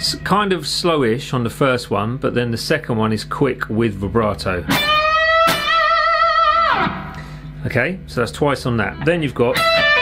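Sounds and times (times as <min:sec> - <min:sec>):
electric guitar string bend: 0:04.6 - 0:07.6, 0:08.9 - 0:10.0.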